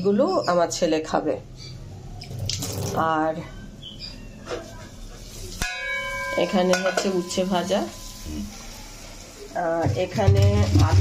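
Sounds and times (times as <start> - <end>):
metal cookware clink and ring: 5.6 - 8.6.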